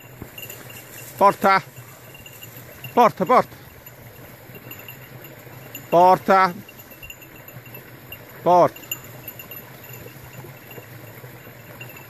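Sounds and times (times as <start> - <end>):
man shouting loudly: 3.0 - 3.5, 6.0 - 6.6, 8.4 - 8.7.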